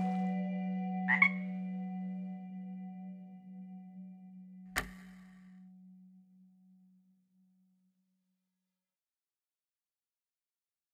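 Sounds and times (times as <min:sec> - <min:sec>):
low musical drone: 0:00.0 - 0:07.3
frog croaking: 0:01.1 - 0:01.5.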